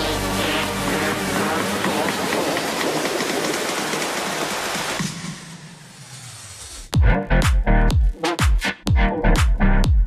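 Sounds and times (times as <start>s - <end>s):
hissing white-noise sweep: 0.0s - 6.9s
electronic background music: 0.0s - 10.0s.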